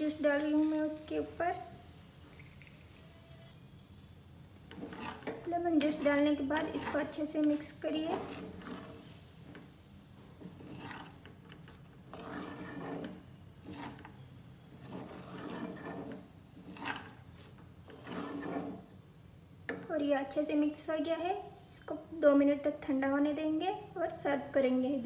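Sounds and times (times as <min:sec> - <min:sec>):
spatula scraping a pan: 0:04.6 - 0:19.0.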